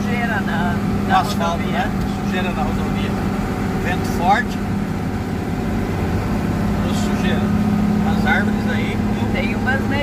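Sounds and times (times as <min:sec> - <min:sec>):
diesel engine low drone: 0:00.0 - 0:10.0.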